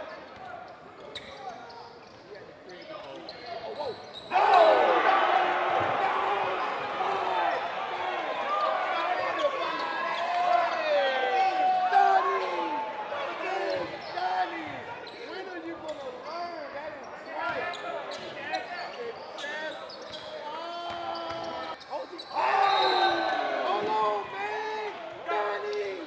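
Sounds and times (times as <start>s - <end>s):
players' voices echoing: 2.7s - 26.0s.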